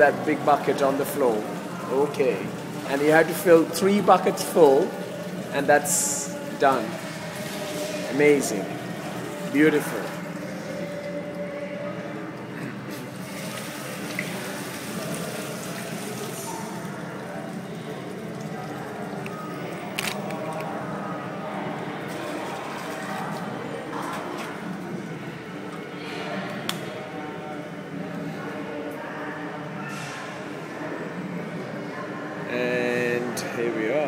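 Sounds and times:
water pouring and splashing: 0:00.0 - 0:11.2, 0:12.8 - 0:20.5, 0:22.0 - 0:24.6.

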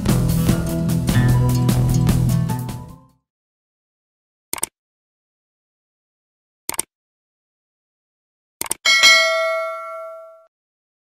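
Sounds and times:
notification bell ding: 0:08.9 - 0:10.5.

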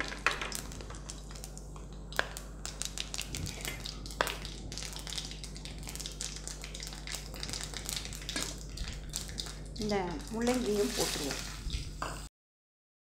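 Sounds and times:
seeds spluttering in hot oil: 0:00.0 - 0:12.3.

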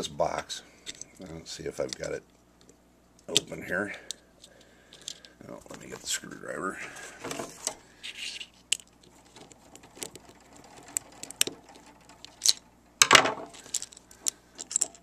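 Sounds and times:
loud rattle: 0:09.3 - 0:14.0.

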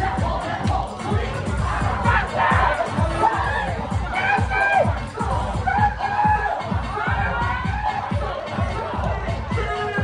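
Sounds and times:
crowd shouting and cheering: 0:00.0 - 0:10.0
dance music with fast bass beat: 0:00.0 - 0:10.0.

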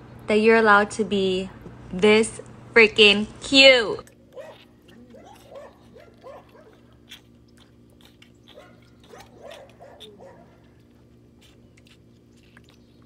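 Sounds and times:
calf sucking and gulping: 0:04.0 - 0:13.0.

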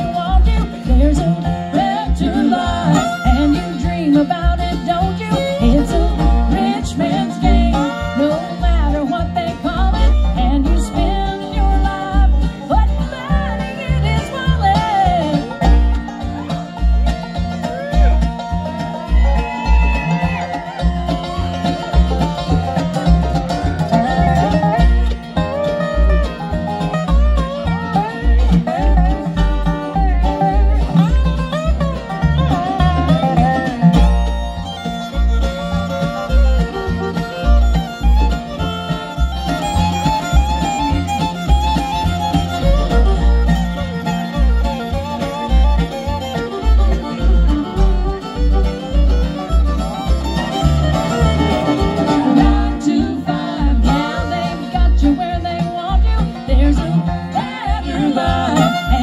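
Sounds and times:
acoustic guitars: 0:00.0 - 0:59.0
banjo: 0:00.0 - 0:59.0
fiddle: 0:00.0 - 0:59.0
mandolin: 0:00.0 - 0:59.0
upright bass: 0:00.0 - 0:59.0.

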